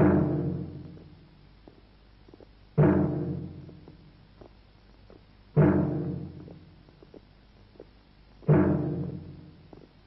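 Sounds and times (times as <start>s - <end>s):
deep drum stroke ringing: 0.0s - 1.3s, 2.7s - 4.2s, 5.5s - 6.9s, 8.4s - 9.8s.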